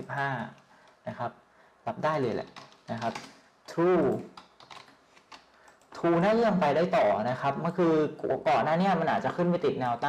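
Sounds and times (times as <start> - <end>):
computer keyboard typing: 2.3 - 6.6.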